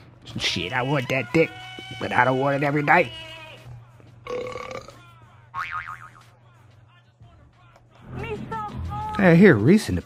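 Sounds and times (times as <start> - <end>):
person singing: 1.4 - 9.3.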